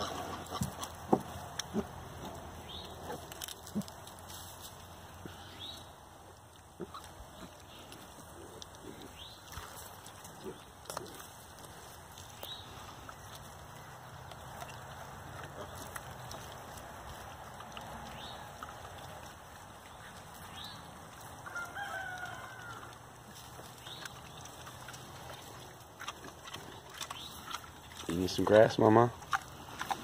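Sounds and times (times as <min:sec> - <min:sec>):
faint rooster crowing: 0:21.4 - 0:23.0.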